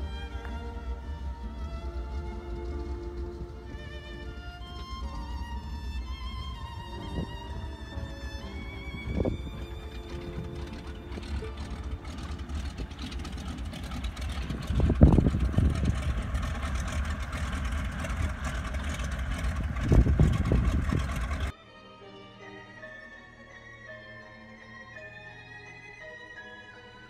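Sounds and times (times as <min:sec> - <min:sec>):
quiet music: 0:00.0 - 0:15.3, 0:21.5 - 0:27.0
floatplane engine running: 0:00.0 - 0:21.5
wind buffeting microphone: 0:00.0 - 0:21.5.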